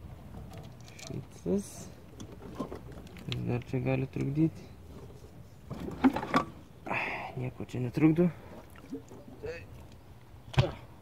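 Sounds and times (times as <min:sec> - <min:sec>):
metal knocking and scraping: 0:02.2 - 0:03.3, 0:04.8 - 0:06.6.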